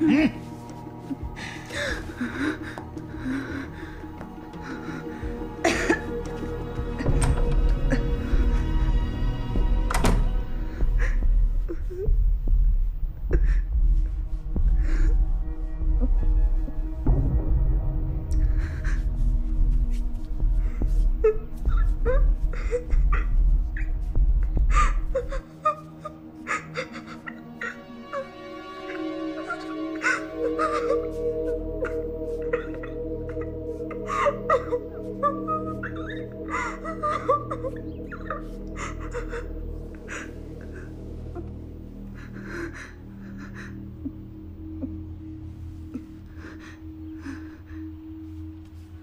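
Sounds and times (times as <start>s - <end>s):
woman sobbing: 0.0s - 7.2s, 10.7s - 12.5s, 13.3s - 16.8s, 18.2s - 48.4s
soft background music: 0.0s - 49.0s
deep low hum: 6.4s - 25.4s.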